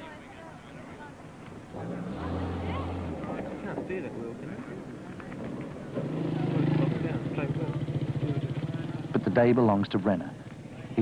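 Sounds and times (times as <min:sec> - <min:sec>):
faint voices: 0:00.0 - 0:11.0
small motorcycle engine idling: 0:05.9 - 0:09.8.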